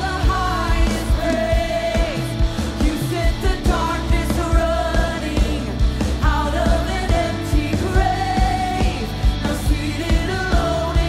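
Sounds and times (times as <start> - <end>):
band playing: 0.0 - 11.0
drums steady beat: 0.0 - 11.0
woman singing into microphone: 0.0 - 11.0.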